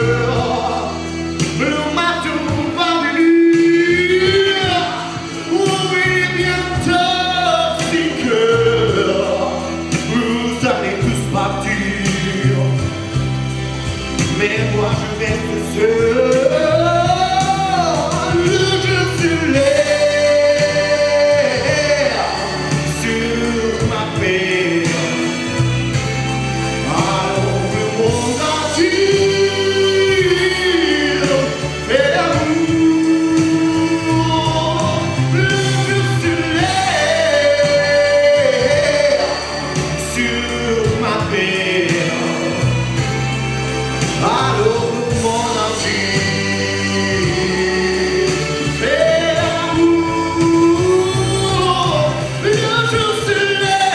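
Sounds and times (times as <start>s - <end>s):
instrumental accompaniment: 0.0s - 53.9s
man singing pop ballad: 0.0s - 53.9s.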